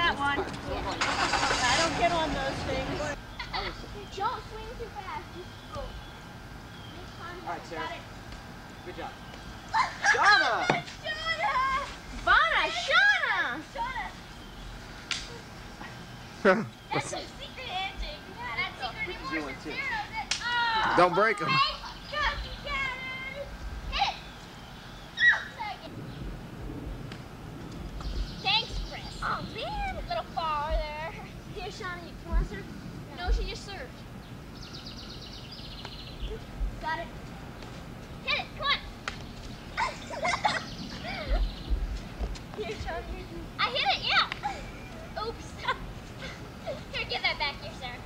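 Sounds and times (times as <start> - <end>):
children calling and shouting: 0.0 - 26.1, 28.0 - 48.0.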